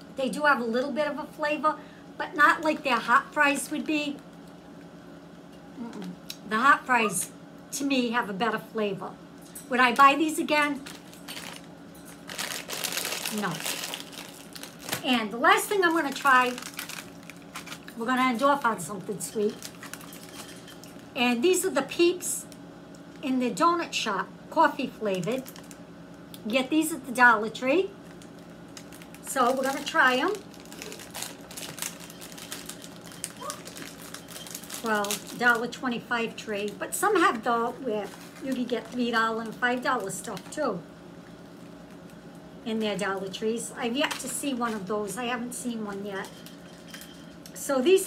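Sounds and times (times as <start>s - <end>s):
plastic snack bag crinkling: 10.7s - 21.1s, 25.3s - 25.8s, 28.0s - 35.7s, 36.6s - 40.6s, 41.3s - 42.3s, 44.0s - 44.9s.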